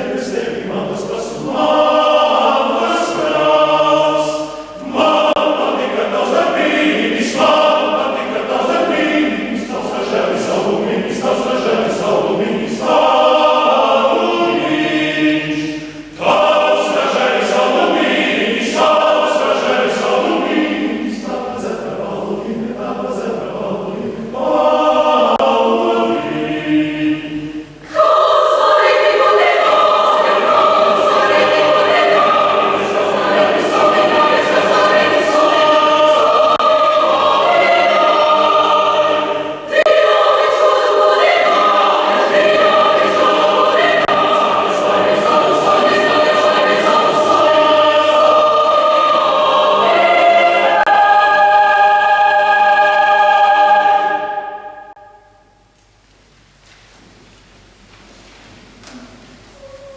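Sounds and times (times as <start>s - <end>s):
choir singing sustained chords: 0.0s - 55.8s.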